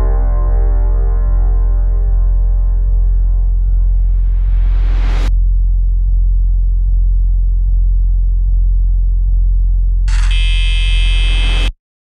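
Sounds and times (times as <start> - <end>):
deep bass drone: 0.0 - 11.8
harsh high buzzing synth: 10.1 - 11.8.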